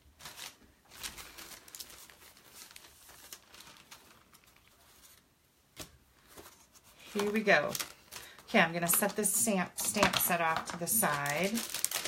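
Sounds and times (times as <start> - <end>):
paper crinkling and rustling: 0.0 - 12.0.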